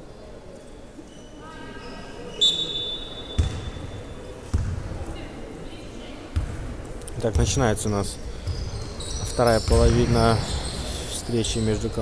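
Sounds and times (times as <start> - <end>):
basketball bouncing on gym floor: 3.4 - 3.9, 4.5 - 5.0, 6.3 - 6.7.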